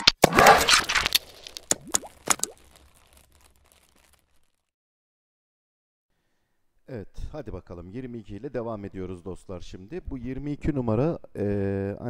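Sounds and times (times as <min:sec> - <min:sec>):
sharp pops with upward sweep: 0:00.1 - 0:04.6.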